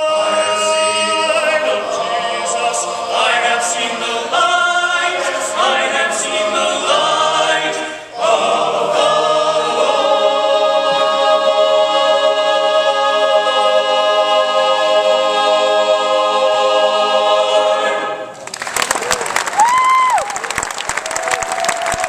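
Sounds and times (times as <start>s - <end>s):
men's chorus singing a cappella: 0.0s - 18.3s.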